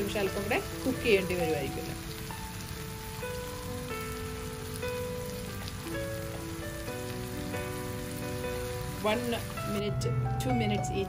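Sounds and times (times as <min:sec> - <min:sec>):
shrimp sizzling in a frying pan: 0:00.0 - 0:11.0
soft background music: 0:00.0 - 0:11.0.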